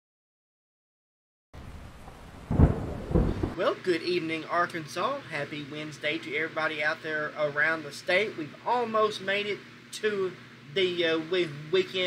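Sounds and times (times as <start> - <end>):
deep thunder roll: 1.6 - 3.6
rain hiss: 1.6 - 12.0.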